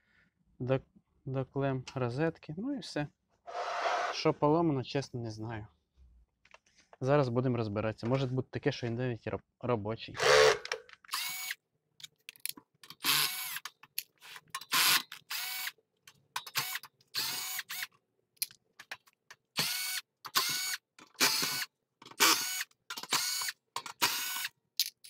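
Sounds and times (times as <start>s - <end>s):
cordless drill whining: 10.2s - 11.6s, 13.0s - 13.6s, 14.7s - 15.7s, 16.6s - 17.9s, 19.6s - 24.5s.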